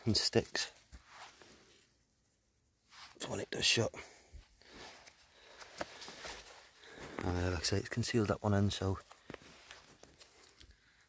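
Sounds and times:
rustling handling noise: 0.0s - 3.7s, 4.4s - 11.0s.

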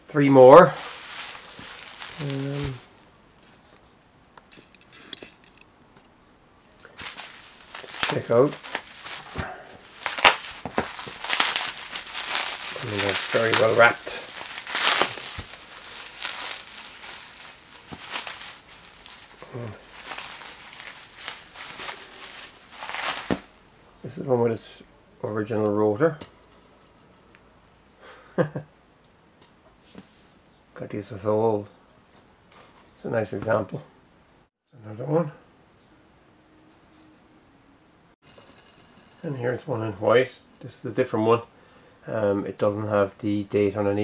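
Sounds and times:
room hiss: 0.0s - 26.2s
bubble wrap crinkling: 0.6s - 5.6s, 6.7s - 24.0s.

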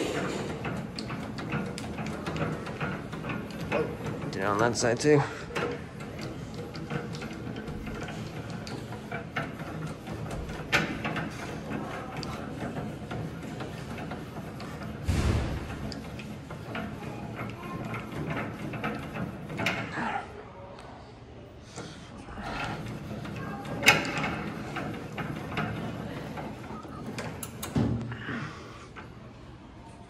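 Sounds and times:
hand crank ratcheting: 0.1s - 19.9s, 22.4s - 27.8s
loud mechanical thud: 15.0s - 15.8s.

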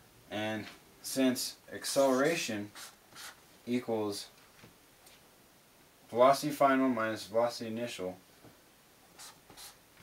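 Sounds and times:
marker writing on paper: 2.7s - 3.4s, 9.2s - 9.8s.

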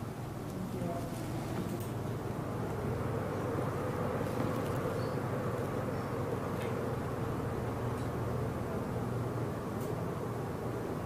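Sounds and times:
low buzzing hum: 0.0s - 11.0s.

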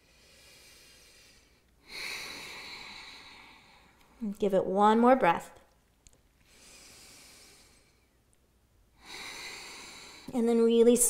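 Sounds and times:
woman breathing heavily: 0.0s - 4.2s, 6.4s - 8.2s, 9.0s - 10.4s.

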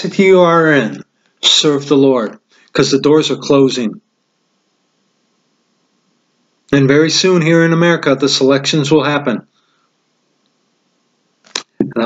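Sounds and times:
man speaking: 0.0s - 4.0s, 6.7s - 9.5s, 11.8s - 12.0s.

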